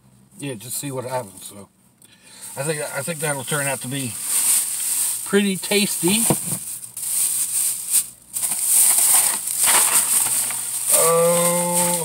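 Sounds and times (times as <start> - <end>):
plastic bag rustling: 2.5 - 12.0.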